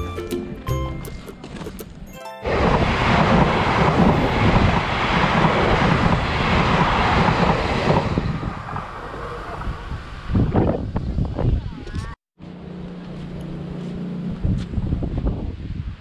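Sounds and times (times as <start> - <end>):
electric train passing: 0.0 - 10.4.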